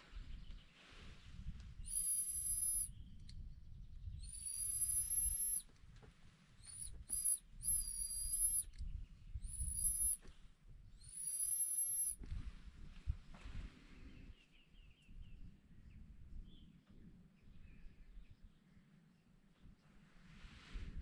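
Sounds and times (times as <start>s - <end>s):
high-pitched mouse squeak call: 1.8s - 3.0s, 4.2s - 5.7s, 6.6s - 8.8s, 9.4s - 10.2s, 11.0s - 12.2s.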